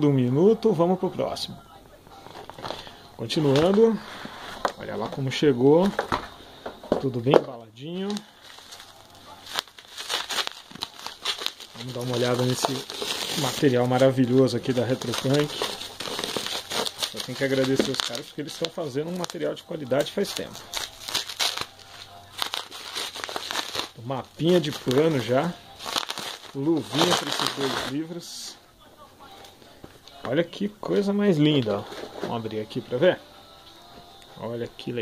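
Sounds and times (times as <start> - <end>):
bubble wrap crackling: 2.2 - 6.2, 7.9 - 28.5
plastic packaging crinkling: 2.2 - 6.3, 7.9 - 28.2.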